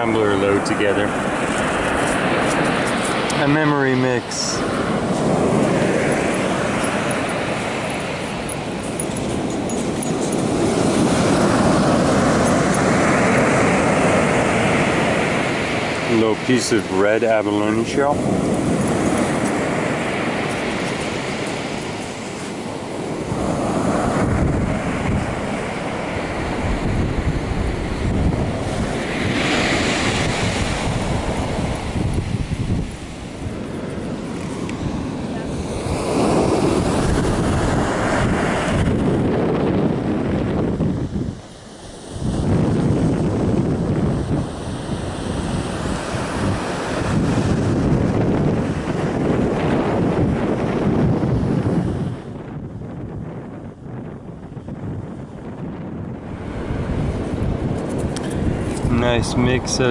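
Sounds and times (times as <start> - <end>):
ocean surf washing ashore: 0.0 - 59.9
wind rumble on microphone: 0.0 - 59.9.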